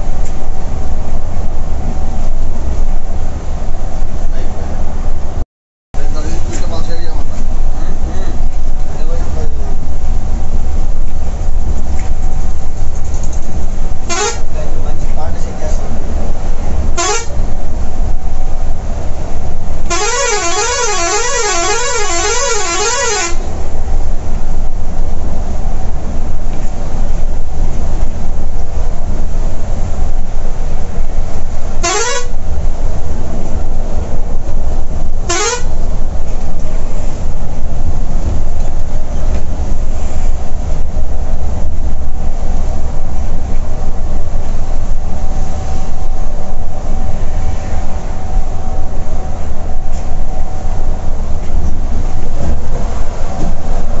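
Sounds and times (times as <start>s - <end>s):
diesel bus engine drone: 0.0s - 5.4s, 6.0s - 54.0s
road noise: 0.0s - 5.4s, 6.0s - 54.0s
horn whooping and warbling: 14.1s - 14.4s, 17.0s - 17.4s, 19.9s - 23.4s, 31.8s - 32.4s, 35.3s - 35.7s.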